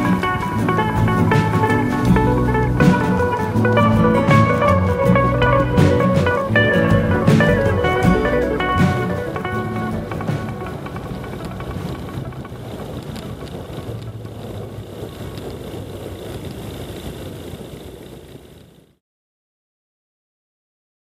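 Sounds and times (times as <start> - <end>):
background music: 0.0 - 13.0
light aircraft engine and propeller: 0.0 - 19.0.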